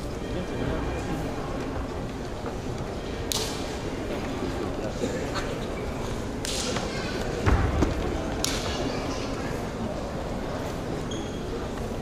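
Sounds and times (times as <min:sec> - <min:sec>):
short sharp snap: 0:03.3 - 0:03.6.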